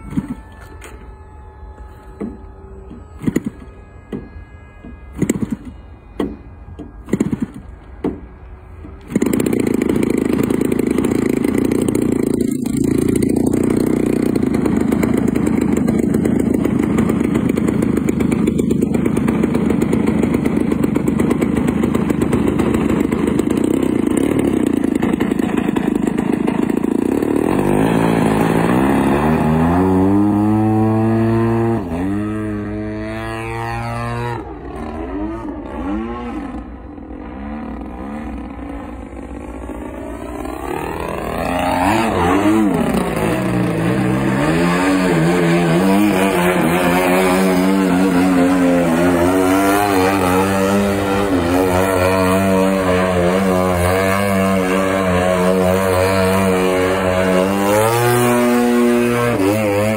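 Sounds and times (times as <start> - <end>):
model plane engine running: 0.0 - 35.6, 36.4 - 59.9.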